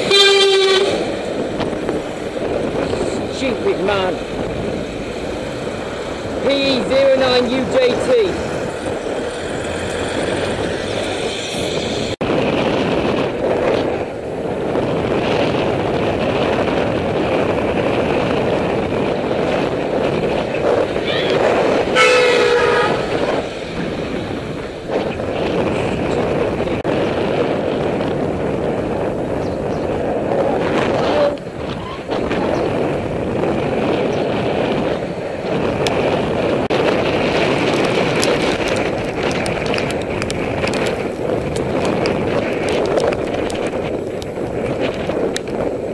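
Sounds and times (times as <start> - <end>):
vehicle horn: 0.0 - 1.0, 21.9 - 23.3
bicycle road noise: 0.0 - 45.9
wind rush on microphone: 0.0 - 45.9.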